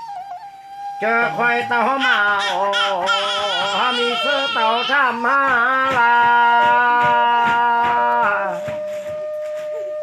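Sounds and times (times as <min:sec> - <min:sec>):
folk singing: 0:01.0 - 0:08.7.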